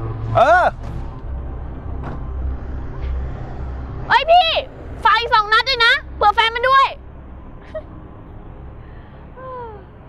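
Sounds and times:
van engine running: 0:00.0 - 0:10.0.

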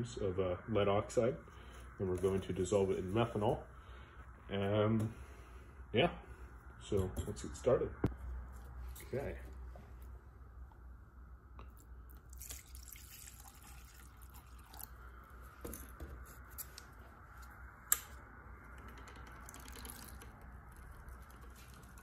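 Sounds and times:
liquid pouring into a glass beaker: 0:12.1 - 0:15.1, 0:19.4 - 0:21.0.

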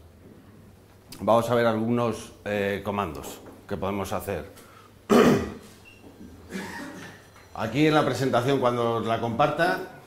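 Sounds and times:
person clearing throat: 0:05.1 - 0:05.7, 0:06.5 - 0:07.2.

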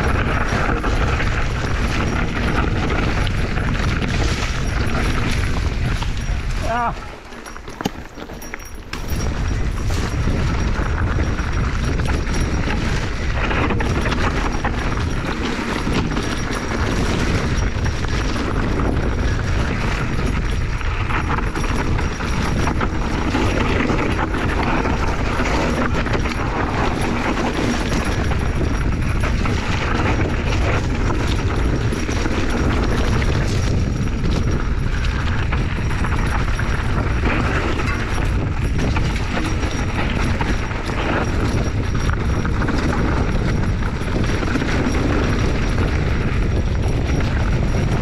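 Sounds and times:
mountain bike rattling over rocks: 0:00.0 - 0:48.0
wind on microphone: 0:00.0 - 0:48.0.

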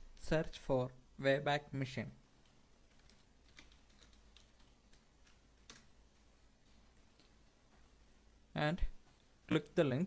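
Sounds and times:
faint keyboard typing: 0:02.3 - 0:07.9.

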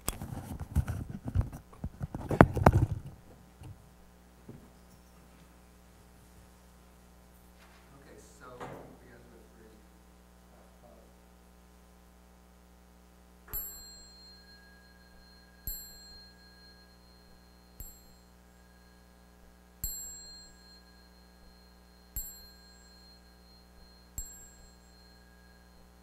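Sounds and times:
small bell ringing: 0:13.5 - 0:26.0.

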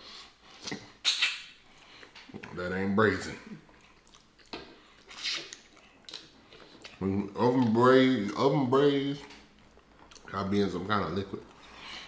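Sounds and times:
wet mouth noises chewing: 0:00.4 - 0:02.6, 0:03.4 - 0:07.8, 0:09.2 - 0:10.4.

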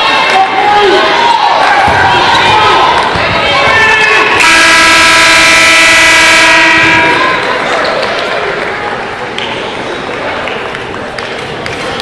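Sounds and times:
scoreboard horn blast: 0:04.4 - 0:07.4.

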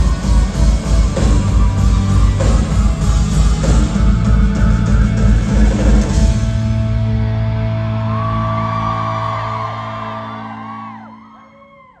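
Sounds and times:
audience whooping and screaming: 0:00.0 - 0:03.7, 0:07.6 - 0:12.0.

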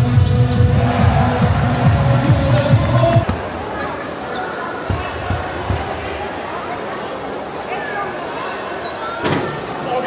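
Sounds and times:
murmur of crowd: 0:00.0 - 0:10.0.

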